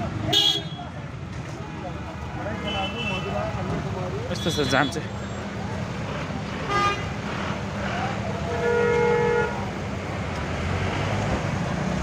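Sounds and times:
idling engines rumbling: 0.0 - 12.0
car horns honking: 0.3 - 0.9, 8.4 - 9.7.

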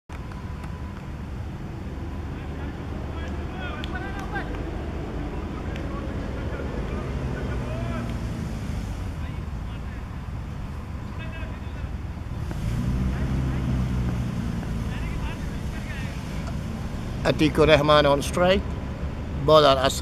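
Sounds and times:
steady low rumble: 0.8 - 19.4
faint distant voices: 1.8 - 18.7.

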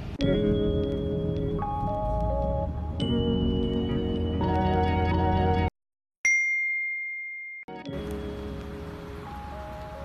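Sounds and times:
music: 0.2 - 5.7, 7.7 - 10.0
high bell ding: 6.3 - 7.8.

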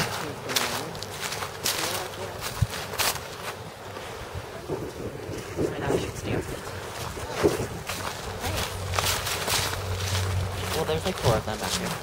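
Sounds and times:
footsteps in dry undergrowth: 0.0 - 12.0
wind rumble on microphone: 2.2 - 3.2, 3.9 - 12.0.

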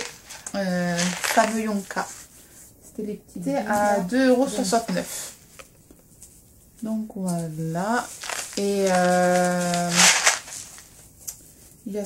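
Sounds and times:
candy rattling in cardboard box: 0.0 - 2.0, 8.0 - 11.0.

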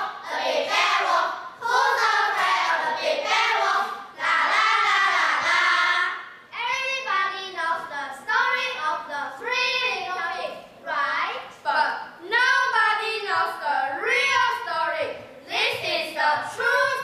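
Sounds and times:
children singing: 0.0 - 6.2.

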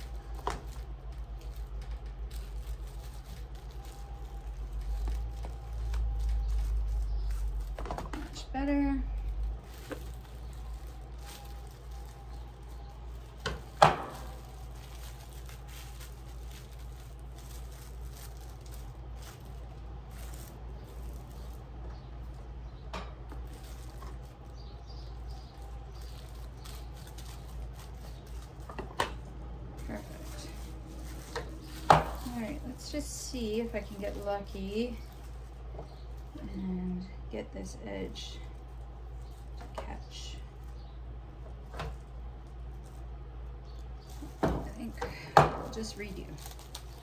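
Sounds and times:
plastic film crinkling: 0.0 - 36.8, 37.9 - 47.0
steady low hum: 0.0 - 47.0.

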